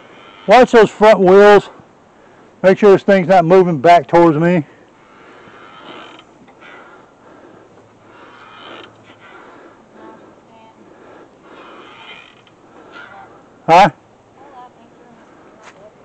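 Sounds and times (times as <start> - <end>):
hydraulic jack creaking strokes: 5.5 - 6.8, 8.1 - 9.4, 11.6 - 13.2.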